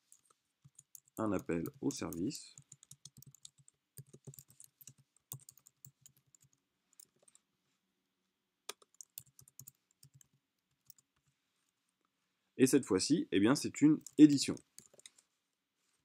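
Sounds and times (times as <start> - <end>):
typing on computer keyboard: 0.0 - 7.3, 8.7 - 11.1, 14.0 - 15.2.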